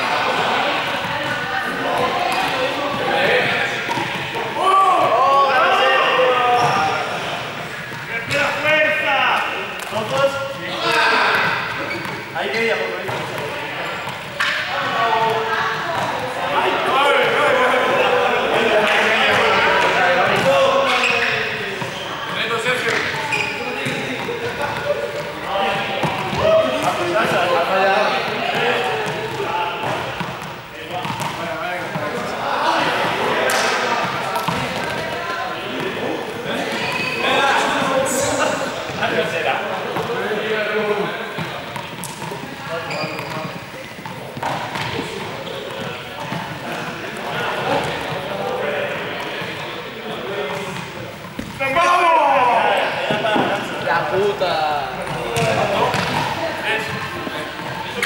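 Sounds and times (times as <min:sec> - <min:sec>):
players chattering and calling out: 0:00.0 - 0:58.0
ball bouncing on wooden floor: 0:31.0 - 0:31.4, 0:55.1 - 0:56.3.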